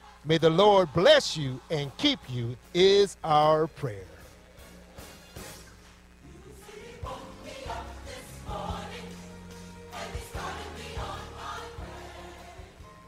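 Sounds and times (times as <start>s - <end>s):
choir singing with instruments: 0.0s - 2.7s, 6.2s - 13.0s.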